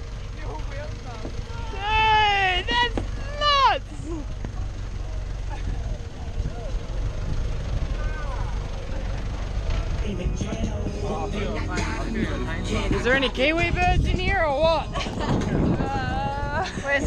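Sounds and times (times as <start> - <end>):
vehicle engine rumbling: 0.0 - 17.0
faint voices: 0.2 - 17.0.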